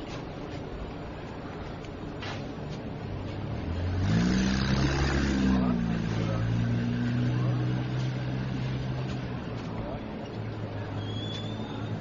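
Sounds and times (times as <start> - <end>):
vehicle engine passing by: 3.2 - 11.0.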